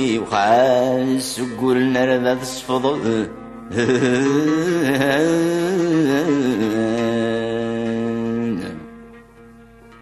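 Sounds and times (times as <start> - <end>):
man singing long note: 0.0 - 8.9
instrumental accompaniment: 0.0 - 10.0.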